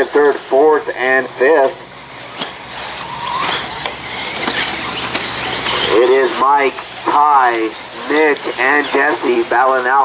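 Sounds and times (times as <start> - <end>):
electric motors whining: 0.0 - 10.0
tyres on gravel: 0.0 - 10.0.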